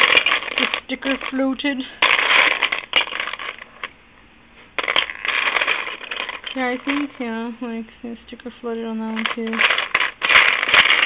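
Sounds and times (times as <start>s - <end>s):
resin charms clattering: 0.0s - 4.0s, 4.8s - 7.4s, 9.1s - 11.0s.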